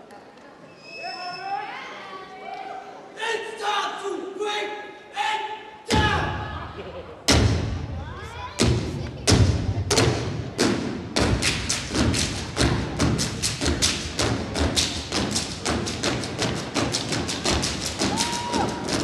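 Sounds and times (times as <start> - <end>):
stomping and clapping: 8.6 - 19.0.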